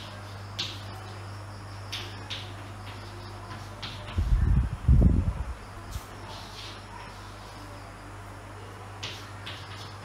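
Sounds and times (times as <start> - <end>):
steady low hum: 0.0 - 10.0
chalk scratching on chalkboard: 5.9 - 7.6.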